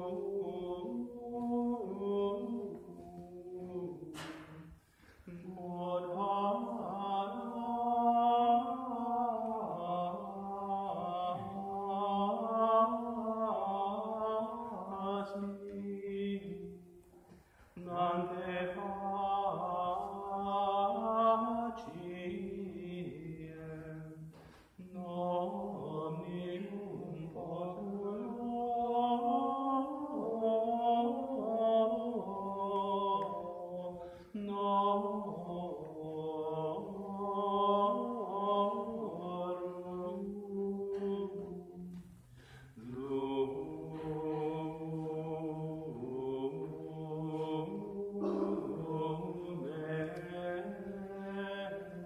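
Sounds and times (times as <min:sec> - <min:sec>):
liturgical chant: 0:00.0 - 0:52.0.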